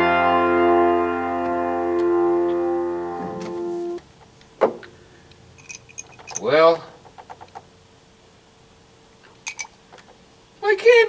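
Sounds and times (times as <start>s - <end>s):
piano chord ringing: 0.0s - 4.0s.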